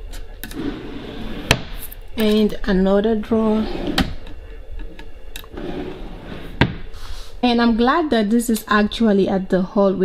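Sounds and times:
drawer sliding open: 0.4 - 1.8, 3.5 - 4.2, 5.5 - 6.9.

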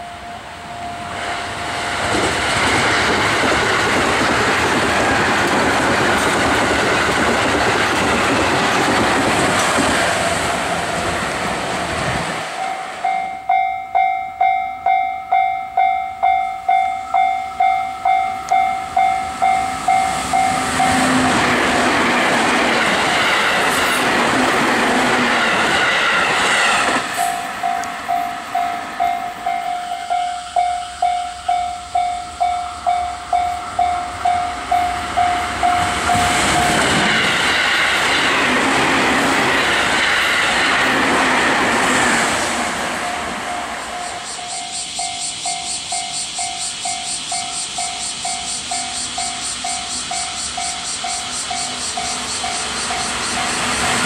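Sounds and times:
electric train passing: 0.0 - 54.0
level crossing bell dinging: 12.6 - 21.0.

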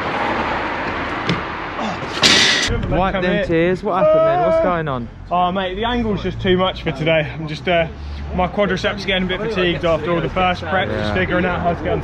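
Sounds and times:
road traffic rushing: 0.0 - 12.0.

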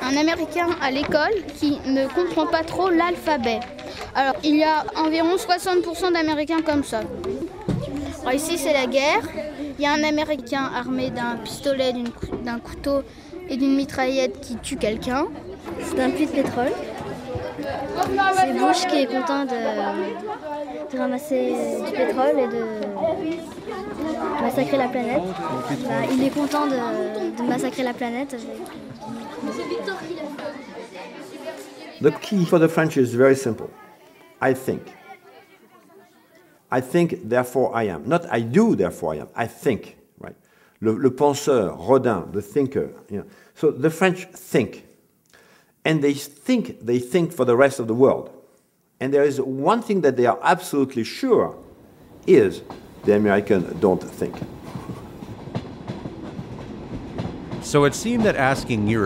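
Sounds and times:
children chattering: 0.0 - 36.7
passenger train rumbling past: 51.6 - 59.0.

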